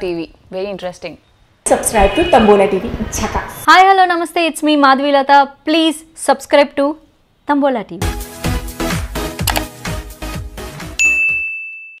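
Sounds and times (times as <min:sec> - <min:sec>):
music with steady beat: 0:08.0 - 0:11.5
notification bell ding: 0:11.0 - 0:12.0.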